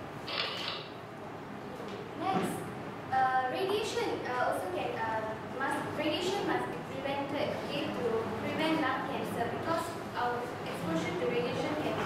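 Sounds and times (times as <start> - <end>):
room noise: 0.0 - 12.0
short creak: 0.3 - 0.9.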